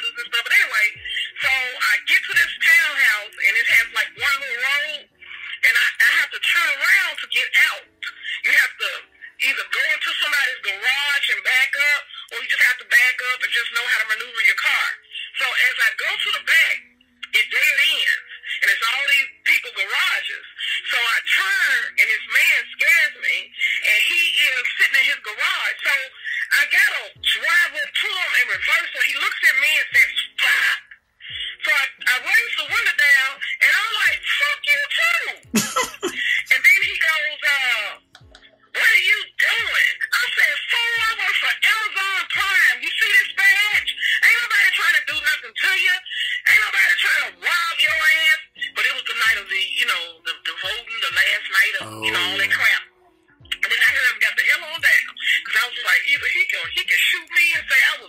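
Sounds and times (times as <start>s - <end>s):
voicemail speech over phone line: 0.0s - 35.4s, 36.0s - 38.1s, 38.7s - 52.8s, 53.5s - 58.0s
background music with deep beat: 35.4s - 37.0s, 38.0s - 38.7s.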